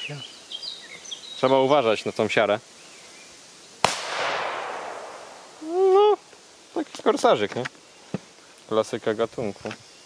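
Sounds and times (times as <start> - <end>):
firecracker bang: 3.8 - 5.7.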